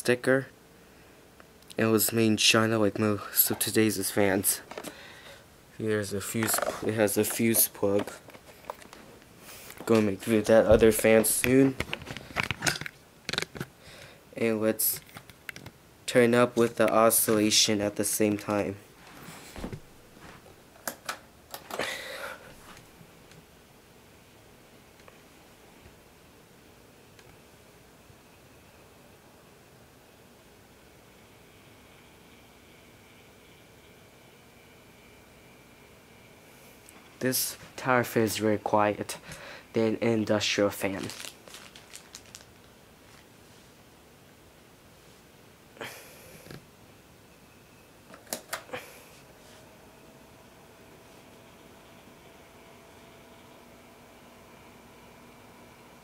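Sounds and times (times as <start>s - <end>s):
fan blowing air: 0.0s - 47.1s, 48.0s - 56.0s.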